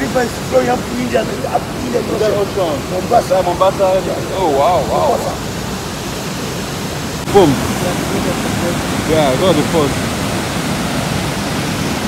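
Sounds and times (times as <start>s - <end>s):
water rushing over rocks: 0.0s - 12.0s.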